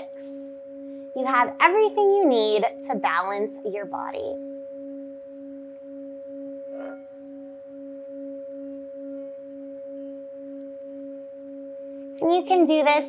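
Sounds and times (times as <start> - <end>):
singing bowl ringing hum: 0.0 - 13.0.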